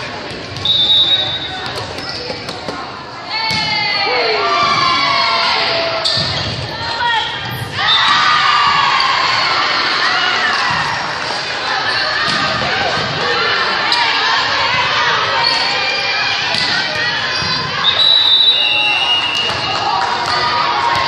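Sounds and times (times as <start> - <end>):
crowd shouting and cheering: 0.0 - 21.0
shoe squeaks on gym floor: 0.6 - 2.7.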